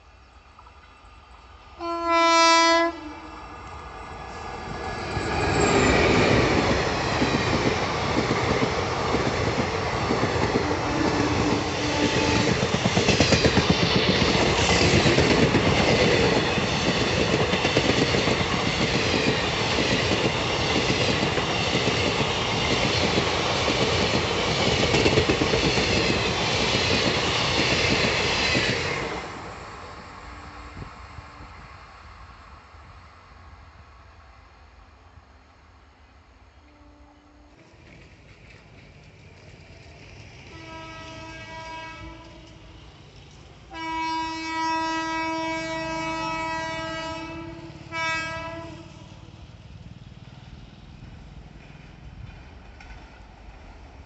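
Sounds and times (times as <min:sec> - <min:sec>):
train passing with rumble: 0:00.0 - 0:54.0
train horn blast: 0:01.8 - 0:03.6, 0:10.6 - 0:12.6, 0:36.5 - 0:37.6, 0:40.5 - 0:42.8, 0:43.7 - 0:49.3.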